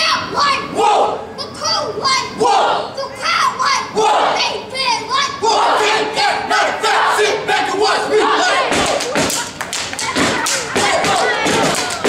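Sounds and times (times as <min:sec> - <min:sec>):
group shouting a chant: 0:00.3 - 0:01.3, 0:02.3 - 0:03.0, 0:03.7 - 0:04.6, 0:05.3 - 0:09.4, 0:10.3 - 0:12.0
hand claps: 0:08.7 - 0:12.0.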